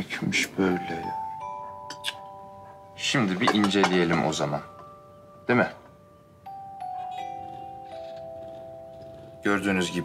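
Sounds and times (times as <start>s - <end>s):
held notes of background music: 0.4s - 10.0s.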